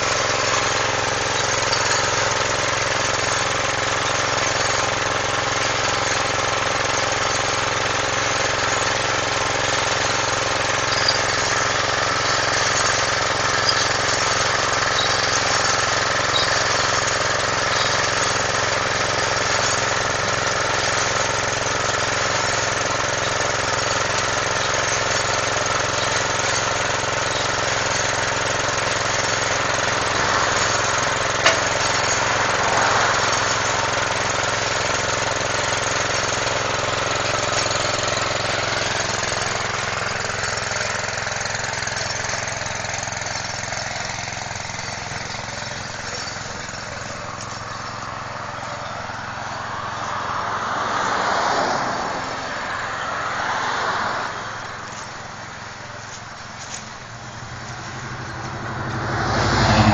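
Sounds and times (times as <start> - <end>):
engine running steadily: 0.0 - 59.9.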